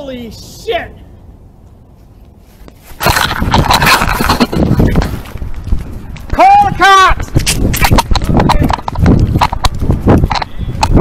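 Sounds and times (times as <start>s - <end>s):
microphone handling noise: 2.6s - 6.4s, 7.2s - 11.0s.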